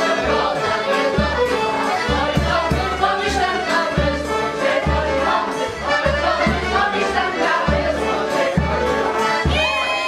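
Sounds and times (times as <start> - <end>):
group of voices singing: 0.0 - 10.0
violin playing folk dance music: 0.0 - 10.0.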